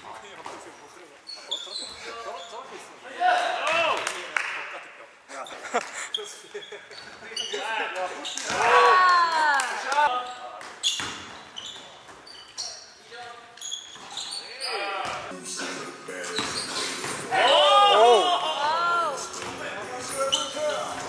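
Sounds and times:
sneakers squeaking on hardwood floor: 0.2s - 2.9s, 5.4s - 8.6s, 10.1s - 15.3s, 16.2s - 17.5s, 19.2s - 21.0s.

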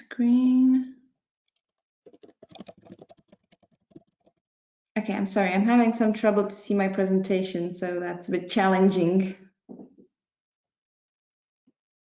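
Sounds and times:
computer keyboard typing: 1.5s - 4.4s.

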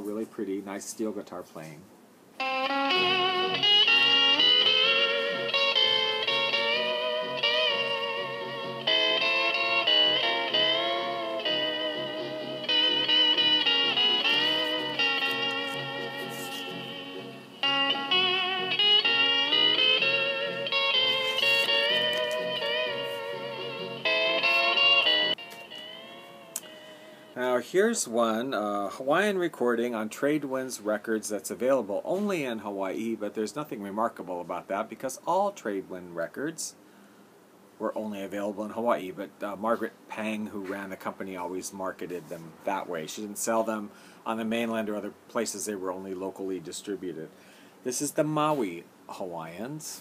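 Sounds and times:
steel guitar with backing band: 2.4s - 27.4s.

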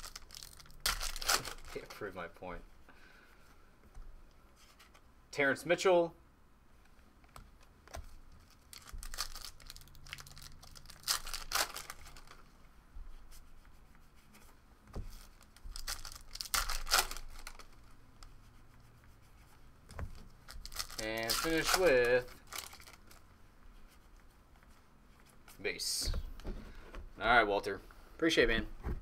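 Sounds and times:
foil packs tearing and crinkling: 0.0s - 1.9s, 8.7s - 12.4s, 15.3s - 17.7s, 20.5s - 23.2s
cards rustling: 0.0s - 2.3s, 7.3s - 12.6s, 14.3s - 18.4s, 19.9s - 26.8s.

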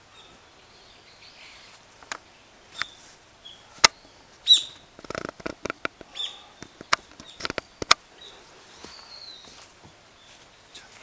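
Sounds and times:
rustling: 1.4s - 11.0s.

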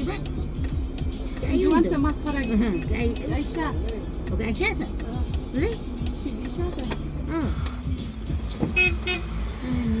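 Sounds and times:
vehicle engine rumbling: 0.0s - 10.0s
car horn toots: 8.7s - 9.5s.

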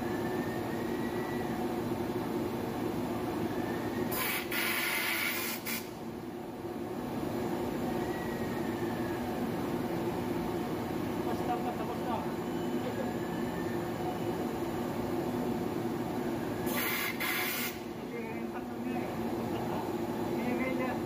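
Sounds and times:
machine mechanical hum: 0.0s - 21.0s
loud hiss: 4.1s - 6.0s, 16.7s - 17.9s.

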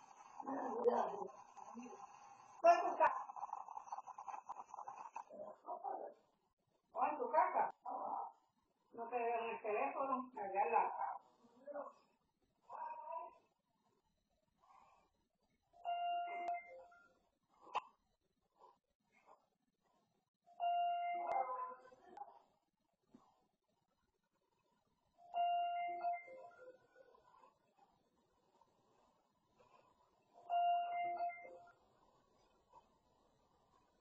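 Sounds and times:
electronic chime: 15.8s - 17.0s, 25.3s - 26.7s, 30.4s - 31.7s.

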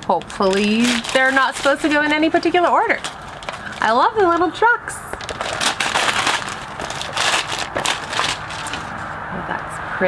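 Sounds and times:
wrapping paper tearing and crumpling: 0.3s - 4.4s, 5.2s - 9.1s.

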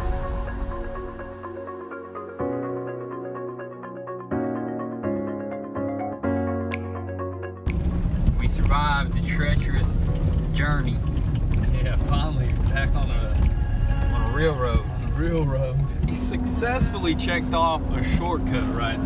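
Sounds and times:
truck road and engine rumble: 7.7s - 19.0s
voices in a truck cab: 8.4s - 19.0s.

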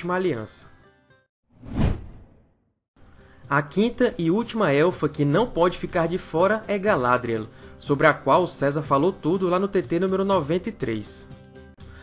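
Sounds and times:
whoosh sound effect: 1.6s - 2.5s.

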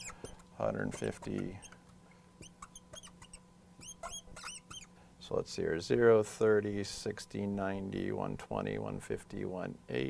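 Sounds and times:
marker squeaking on glass: 0.0s - 1.8s, 2.4s - 4.9s.

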